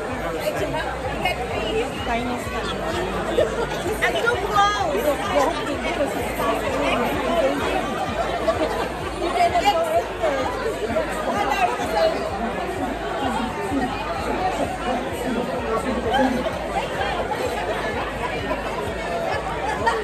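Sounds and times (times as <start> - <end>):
overlapping chatter of many people: 0.0 - 20.0.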